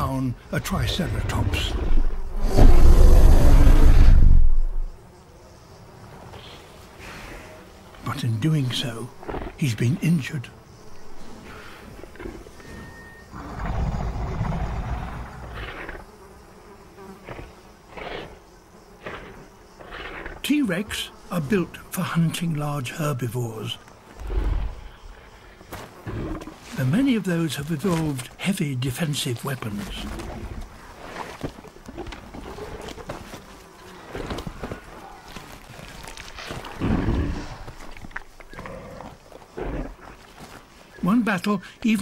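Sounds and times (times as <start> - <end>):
flies buzzing: 0.0 - 42.0
deep rumbling dinosaur growl: 0.9 - 4.7.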